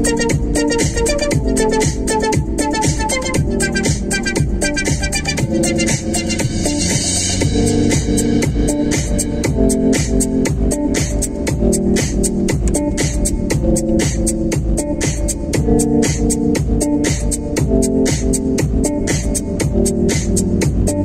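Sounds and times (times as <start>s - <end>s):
electronic music with fast beat: 0.0s - 21.0s.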